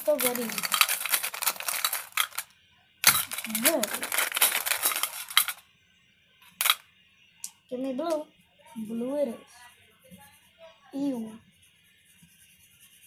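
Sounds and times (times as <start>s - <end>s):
pencils rattling in wire-mesh cup: 0.0s - 5.6s.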